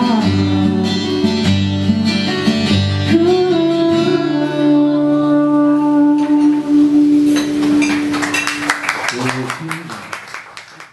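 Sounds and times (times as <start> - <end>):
acoustic guitar and voice song: 0.0 - 8.8
audience hand claps: 7.6 - 10.9.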